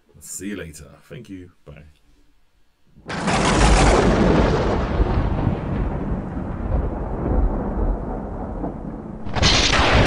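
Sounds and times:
thunder rumbling: 3.0 - 10.0.

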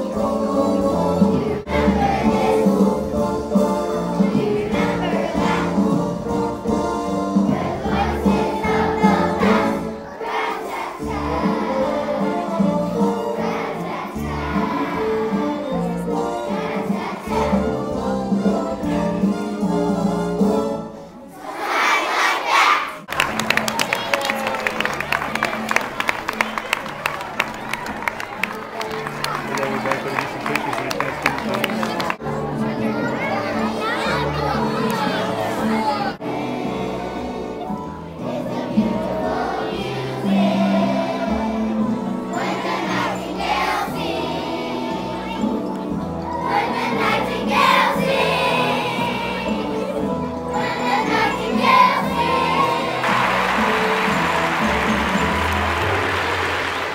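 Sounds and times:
children's chorus singing: 0.0 - 56.9
audience cheering and shouting: 21.9 - 32.1, 52.2 - 56.9
hand clapping: 23.1 - 32.2, 53.0 - 56.9.

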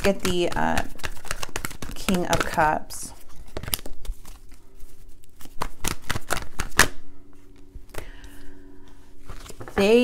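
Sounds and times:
cards shuffled by hand: 0.0 - 7.0.

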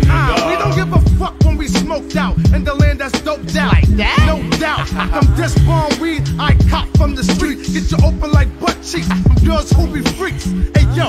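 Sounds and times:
hip-hop beat with bass line: 0.0 - 11.0
man rapping: 0.0 - 11.0.

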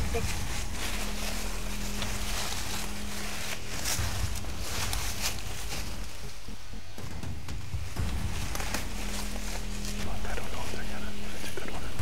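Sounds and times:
footsteps through grass: 0.0 - 12.0
low steady hum: 0.0 - 12.0.

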